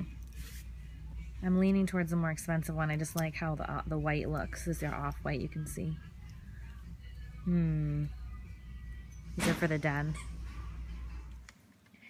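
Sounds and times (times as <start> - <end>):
store background hum: 0.0 - 12.0.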